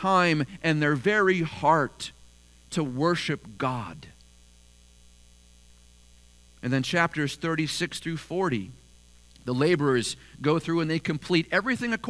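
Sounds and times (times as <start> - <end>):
man's voice: 0.0 - 4.2, 6.6 - 8.8, 9.4 - 12.0
electrical mains hum: 0.0 - 12.0.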